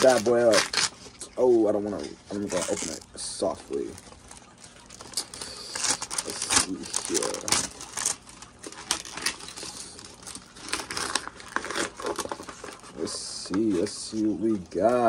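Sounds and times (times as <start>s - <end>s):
paper envelope tearing and crinkling: 0.0s - 1.3s, 1.9s - 14.2s.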